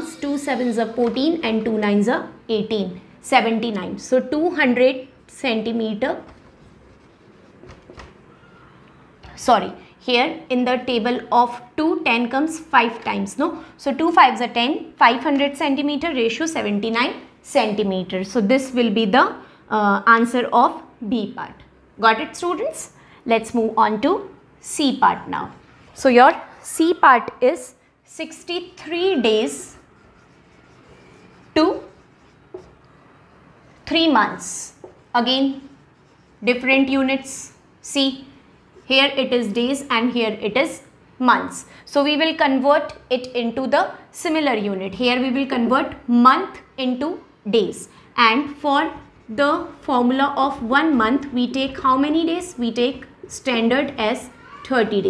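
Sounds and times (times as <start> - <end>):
marker pen writing on whiteboard: 0.0 - 2.7, 5.6 - 8.4, 28.2 - 37.4, 48.4 - 52.4.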